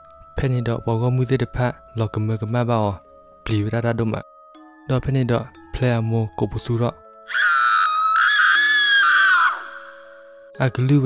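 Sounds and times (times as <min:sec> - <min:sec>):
low droning background music: 0:00.0 - 0:11.0
woman screaming: 0:07.3 - 0:10.3.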